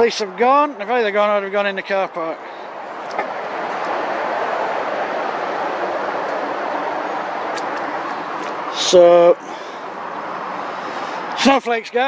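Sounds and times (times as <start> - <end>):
road traffic noise: 0.0 - 12.0.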